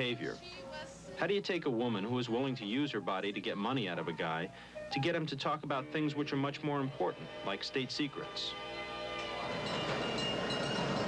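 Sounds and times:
faint sustained music tones: 0.0s - 11.0s
train running past: 6.8s - 11.0s.

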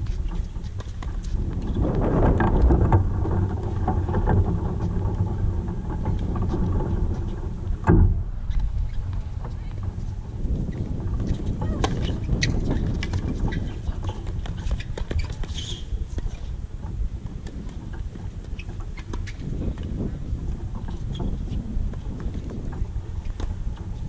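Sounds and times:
wind buffeting microphone: 0.0s - 24.0s
loud thump: 7.8s - 8.2s.

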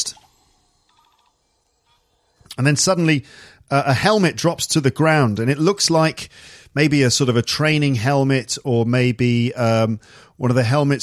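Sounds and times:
insect-like high tones: 0.0s - 3.1s.

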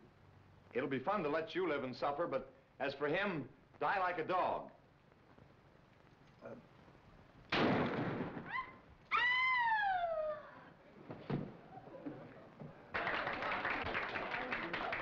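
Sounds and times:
gunshot: 7.5s - 8.6s
woman screaming: 8.5s - 10.7s
thump: 11.1s - 11.6s
applause: 12.9s - 15.0s.

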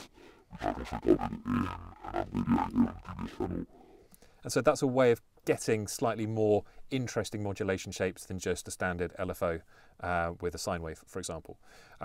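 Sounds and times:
constant low bass: 0.0s - 3.7s
distorted pitched-down speech: 0.6s - 3.6s.

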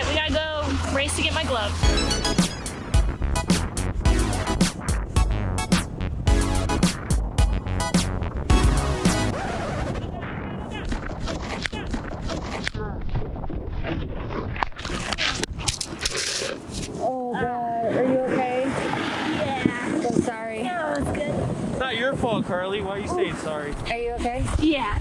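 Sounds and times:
wind on microphone: 0.0s - 25.0s
snowboard scraping over snow: 17.8s - 22.0s.

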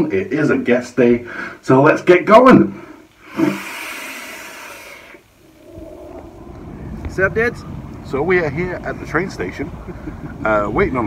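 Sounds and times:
breathy exhale rumble: 2.8s - 8.2s
airy hiss of vape drag: 3.2s - 5.7s.

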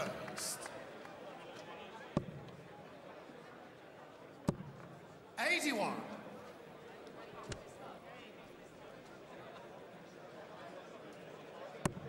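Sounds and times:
faint hum of crowd in hall: 0.0s - 12.0s.

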